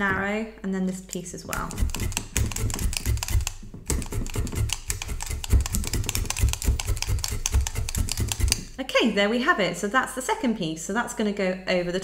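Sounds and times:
felting needles stabbing into brush mat: 0:01.1 - 0:08.8.

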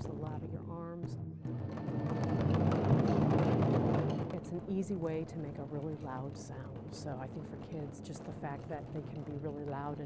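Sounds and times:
taiko drums struck: 0:01.1 - 0:04.4.

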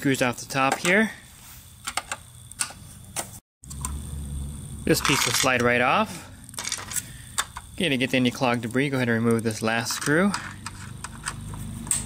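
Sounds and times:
low hum: 0:03.6 - 0:07.8.

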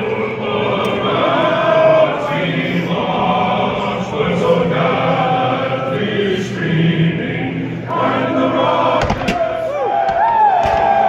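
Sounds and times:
stadium crowd singing: 0:00.0 - 0:11.0
crowd shouting and cheering: 0:07.6 - 0:11.0.

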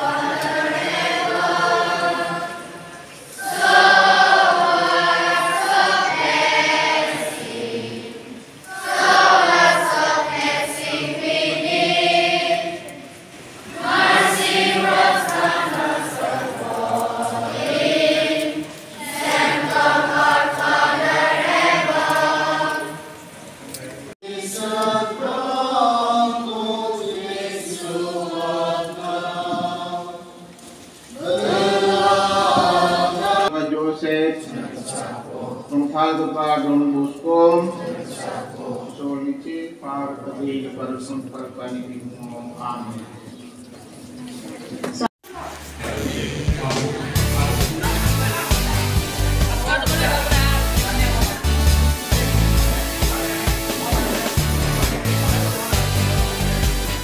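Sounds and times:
children singing in unison: 0:00.0 - 0:23.4, 0:24.2 - 0:30.5, 0:31.1 - 0:33.5, 0:37.8 - 0:39.1.

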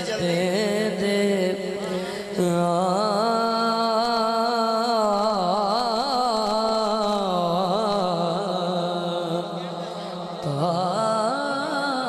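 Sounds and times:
man singing through pa system: 0:00.0 - 0:12.0.

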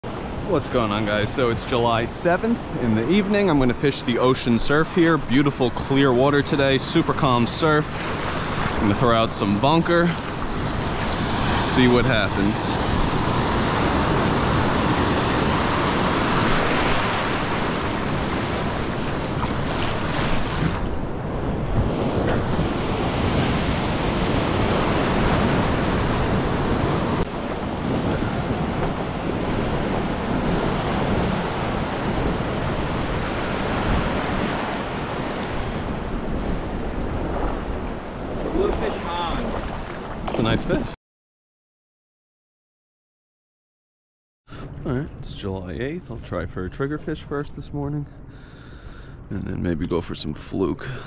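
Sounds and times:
ocean waves breaking: 0:00.0 - 0:41.0
wind buffeting microphone: 0:02.0 - 0:40.9.

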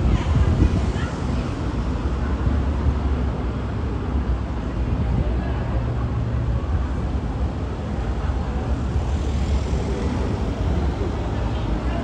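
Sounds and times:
passing cars rumbling: 0:05.7 - 0:12.0.

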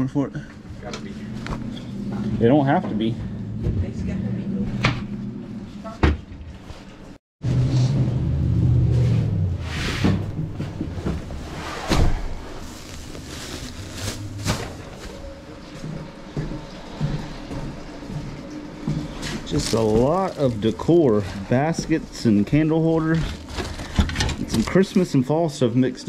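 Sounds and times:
wooden cabinet doors opening and shutting: 0:05.9 - 0:06.4
rummaging through boxes: 0:10.5 - 0:15.8, 0:19.1 - 0:25.2.

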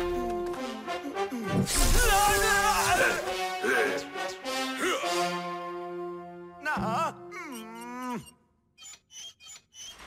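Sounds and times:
short high squeak: 0:08.8 - 0:10.0.

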